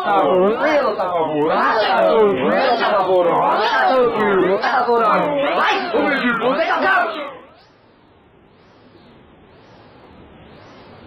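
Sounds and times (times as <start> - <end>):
pitch-warped voices: 0.0 - 7.7.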